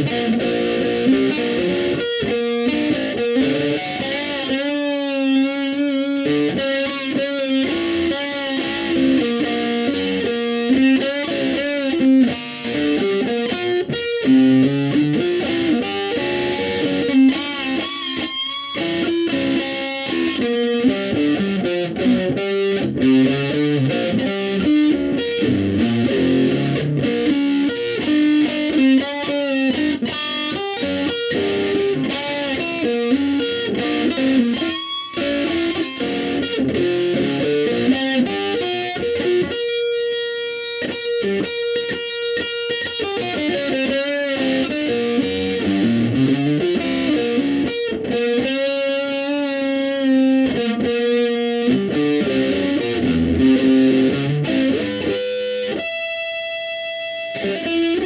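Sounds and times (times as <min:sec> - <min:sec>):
amplified electric guitar jam: 0:00.0 - 0:58.0.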